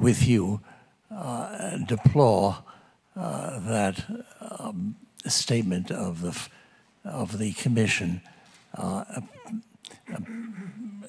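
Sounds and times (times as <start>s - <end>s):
man hesitating saying uh: 8.8s - 11.0s.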